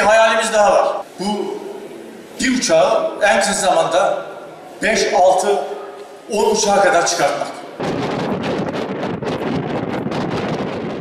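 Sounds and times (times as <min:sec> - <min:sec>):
wind buffeting microphone: 0:07.8 - 0:11.0.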